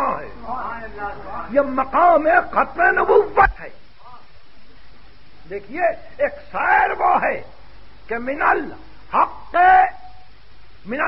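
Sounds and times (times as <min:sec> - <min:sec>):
man lecturing: 0:00.0 - 0:03.8
tape hiss: 0:00.0 - 0:11.0.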